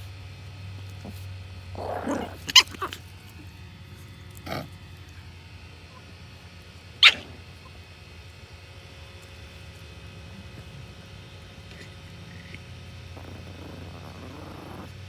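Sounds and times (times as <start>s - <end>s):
puppy growling: 1.0s - 3.5s, 4.3s - 4.8s, 7.0s - 7.5s, 11.5s - 15.0s
puppy yapping: 1.8s - 3.0s, 7.0s - 7.7s.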